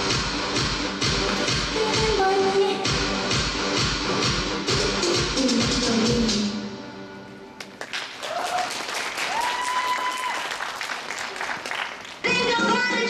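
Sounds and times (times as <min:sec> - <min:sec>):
pop dance music: 0:00.0 - 0:06.7, 0:12.2 - 0:13.0
audience applause: 0:07.6 - 0:12.2
high-pitched cheers: 0:08.2 - 0:11.4.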